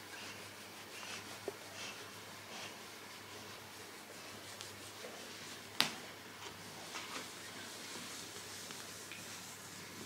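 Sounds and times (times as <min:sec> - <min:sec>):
hands rustling through fur: 0:00.0 - 0:10.0.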